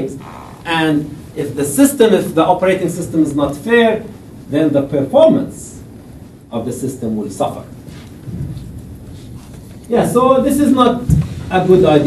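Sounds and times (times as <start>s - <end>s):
man speaking: 0.0s - 5.8s, 9.9s - 12.0s
low room noise rumble: 0.0s - 12.0s.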